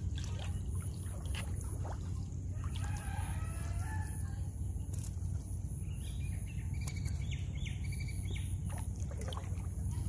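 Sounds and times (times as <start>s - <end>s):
water dripping and splashing: 0.0s - 3.9s, 8.6s - 10.0s
rooster crowing: 2.6s - 4.4s.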